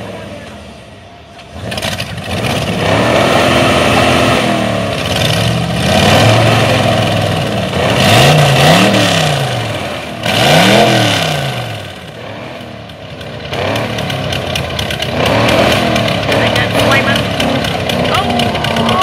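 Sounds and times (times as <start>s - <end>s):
engine revving in blips: 0.0s - 19.0s
exhaust rushes: 0.0s - 19.0s
exhaust crackling and popping: 11.7s - 19.0s.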